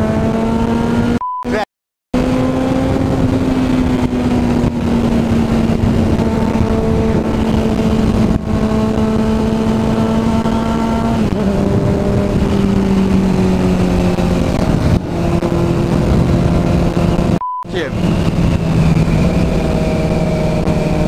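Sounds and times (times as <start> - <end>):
motorcycle engine running: 2.2 - 21.0
wind rush on microphone: 2.2 - 21.0.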